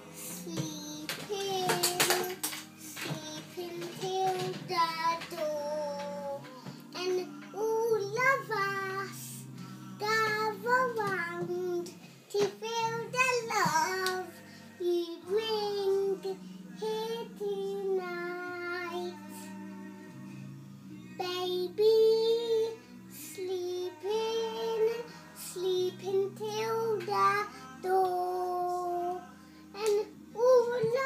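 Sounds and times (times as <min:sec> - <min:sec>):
girl singing: 0:00.0 - 0:20.2, 0:21.0 - 0:31.0.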